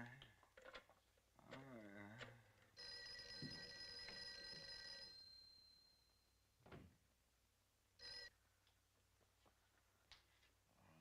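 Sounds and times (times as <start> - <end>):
telephone bell ringing: 2.8 - 6.4, 8.0 - 8.4.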